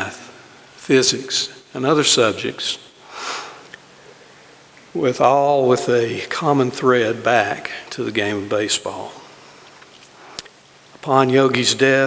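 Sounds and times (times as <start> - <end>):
man breathing in: 3.0 - 4.5.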